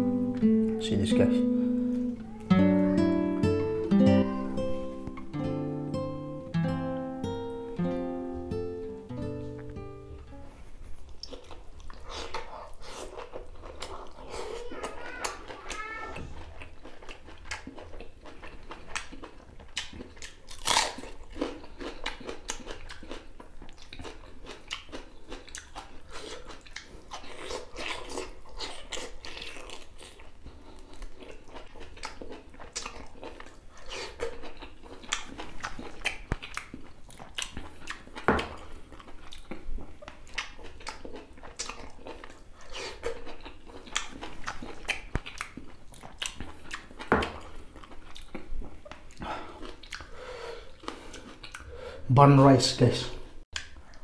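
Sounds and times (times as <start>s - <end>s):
food crunching: 10.9s - 51.7s
wet chewing: 10.9s - 51.8s
lip smacks: 32.0s - 50.2s, 53.5s - 54.0s.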